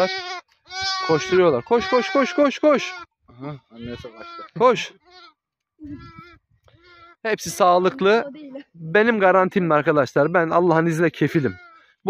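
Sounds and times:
sheep bleating: 0:00.0 - 0:08.2, 0:11.3 - 0:12.0.

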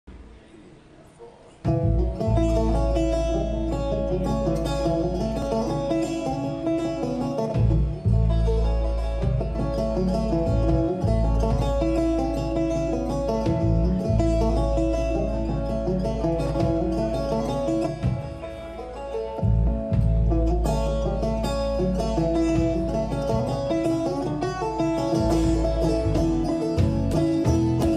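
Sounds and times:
banjo picking: 0:00.1 - 0:27.9
plucked upright bass: 0:01.5 - 0:27.9.

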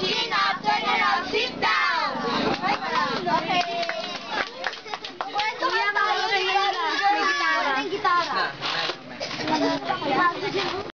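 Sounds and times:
children singing: 0:00.0 - 0:04.4.

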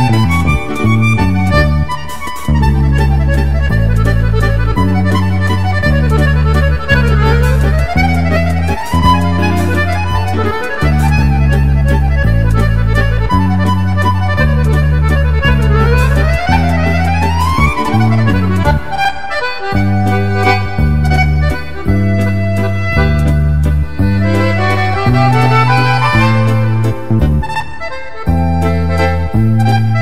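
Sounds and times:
accordion waltz: 0:00.0 - 0:30.0.

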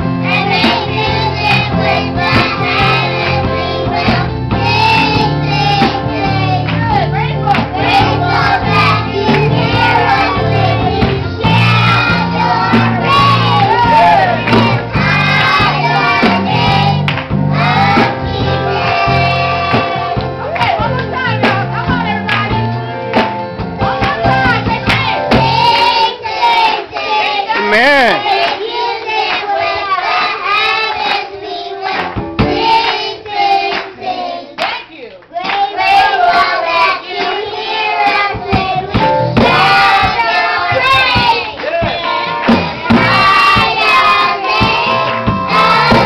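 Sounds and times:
children singing gospel song: 0:00.0 - 0:46.0
hand clapping: 0:17.0 - 0:17.3, 0:19.7 - 0:23.4, 0:27.0 - 0:28.6, 0:31.9 - 0:32.2, 0:34.6 - 0:36.5, 0:37.2 - 0:37.4, 0:40.0 - 0:42.7.

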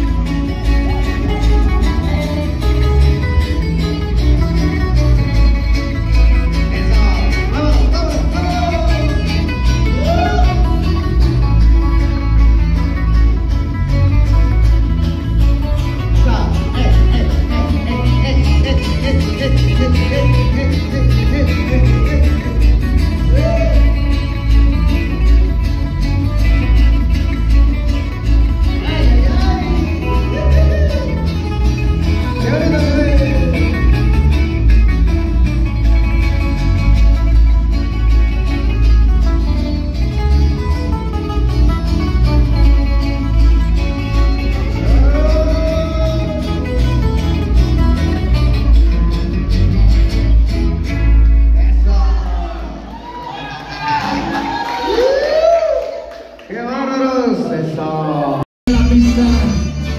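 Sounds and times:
plucked guitars: 0:00.0 - 0:56.4, 0:58.2 - 0:59.9.

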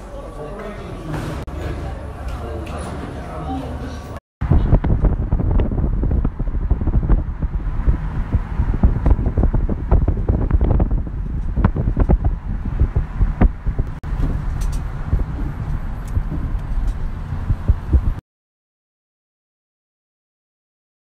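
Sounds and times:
car driving rumble: 0:04.4 - 0:18.2
gusting knocks: 0:04.4 - 0:18.2
wind buffeting microphone: 0:04.4 - 0:18.2.

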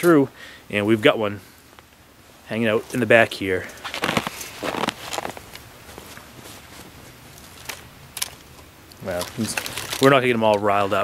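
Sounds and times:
fabric rustling: 0:03.6 - 0:10.2.

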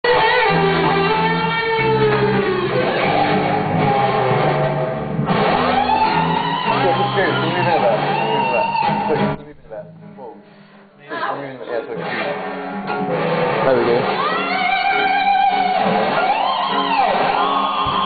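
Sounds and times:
guitar chords: 0:00.0 - 0:18.0.

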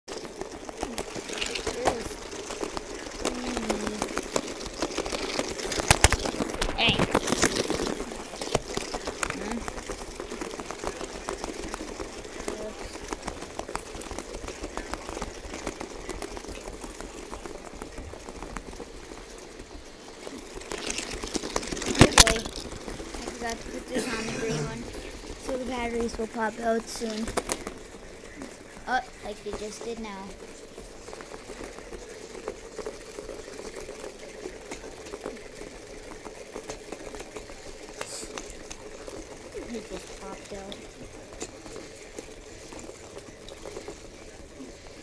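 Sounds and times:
toy balls buzzing and rattling: 0:00.1 - 0:45.0.

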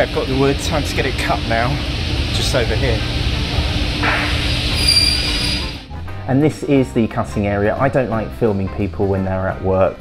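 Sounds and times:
trolley rumbling across floor: 0:00.0 - 0:05.9
high-pitched wheel squeal: 0:04.3 - 0:05.9.

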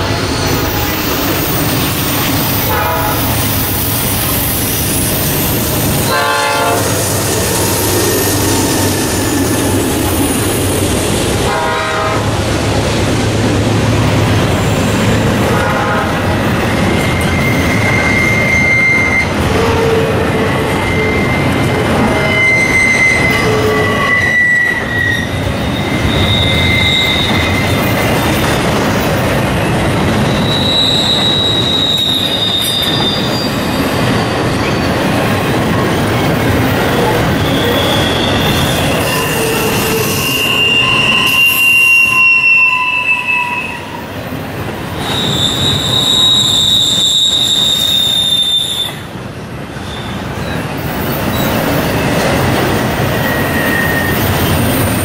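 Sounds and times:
train wheels rumbling on rail: 0:00.0 - 0:55.0
high-pitched wheel squeals: 0:16.6 - 0:28.3, 0:30.2 - 0:35.4, 0:36.2 - 0:44.1, 0:45.0 - 0:49.1, 0:53.0 - 0:55.0.

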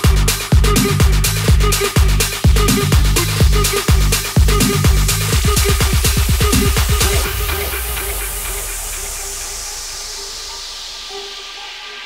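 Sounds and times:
white-noise sweep falling in pitch: 0:00.0 - 0:12.0
held synth note: 0:05.4 - 0:12.0.

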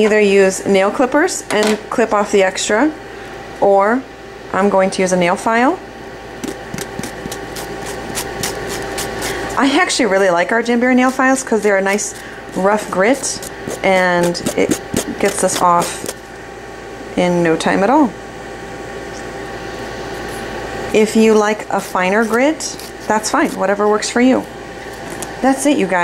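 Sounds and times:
nail file rasping: 0:06.4 - 0:09.5, 0:10.9 - 0:16.2, 0:21.2 - 0:23.8.

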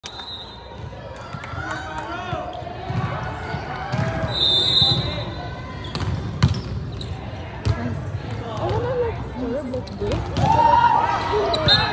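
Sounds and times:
referee's whistle: 0:00.0 - 0:00.8, 0:04.1 - 0:05.5, 0:11.5 - 0:11.9
voices shouting and talking: 0:07.0 - 0:11.9.

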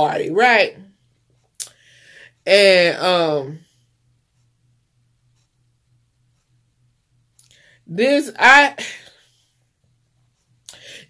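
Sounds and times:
woman speaking: 0:00.0 - 0:00.9, 0:02.4 - 0:03.6, 0:07.9 - 0:09.1
low steady hum: 0:00.0 - 0:11.0
faint breath: 0:01.7 - 0:02.4, 0:07.5 - 0:07.9, 0:10.7 - 0:11.0.

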